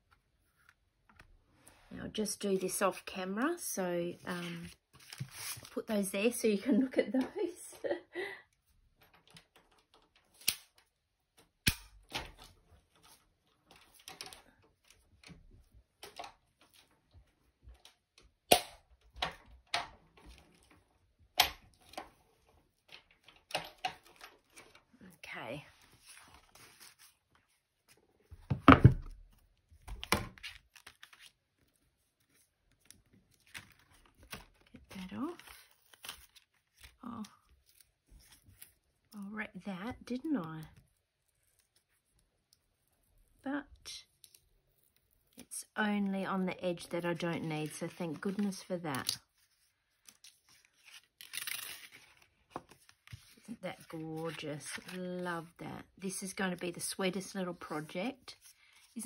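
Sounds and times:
paper rustling: 4.2s - 5.9s, 25.6s - 28.4s, 29.8s - 39.1s, 47.1s - 55.6s.

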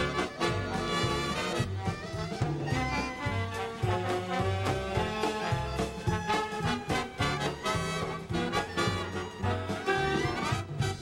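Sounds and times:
bass line: 0.0s - 11.0s
swing music with brass: 0.0s - 11.0s.

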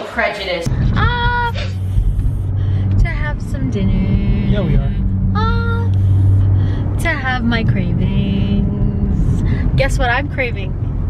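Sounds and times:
car cabin rumble: 0.6s - 11.0s.

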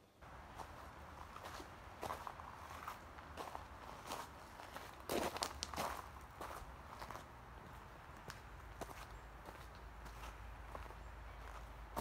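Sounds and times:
footsteps on rocky dirt trail: 0.4s - 12.0s.

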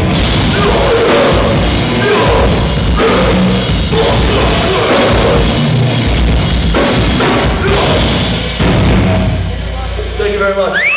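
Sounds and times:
rock band closing hit: 0.0s - 9.5s.

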